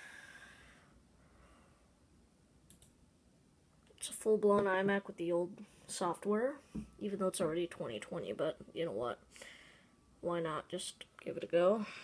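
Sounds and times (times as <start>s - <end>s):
soft hiss: 0.0s - 7.0s
faint mouse clicks: 2.7s - 3.0s.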